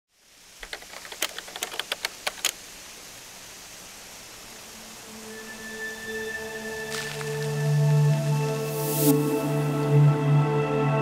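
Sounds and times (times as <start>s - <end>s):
steady hiss: 0.1s - 10.3s
sharp clicks: 0.6s - 2.6s
background music with long tones: 4.3s - 11.0s.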